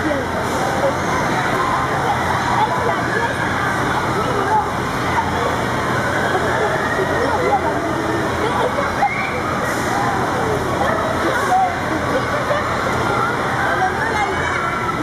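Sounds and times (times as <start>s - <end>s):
children shouting and chattering: 0.0s - 15.0s.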